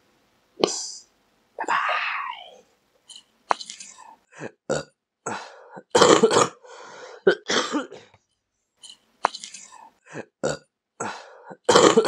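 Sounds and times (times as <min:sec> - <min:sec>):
person making burp-like sounds: 0:04.4 - 0:06.6, 0:10.2 - 0:12.0.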